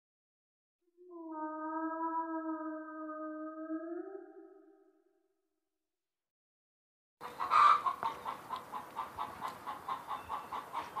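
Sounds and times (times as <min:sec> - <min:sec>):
chicken clucking: 0:07.2 - 0:11.0
chicken squawk: 0:07.2 - 0:11.0.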